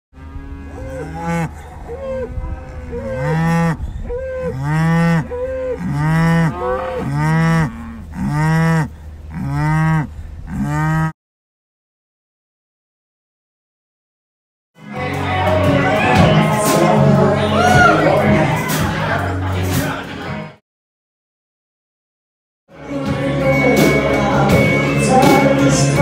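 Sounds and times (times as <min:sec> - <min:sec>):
cattle mooing: 0:00.2 - 0:11.1.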